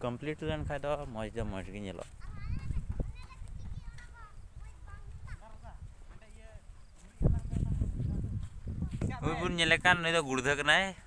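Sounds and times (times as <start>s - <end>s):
low rumble on microphone: 7.2s - 10.0s.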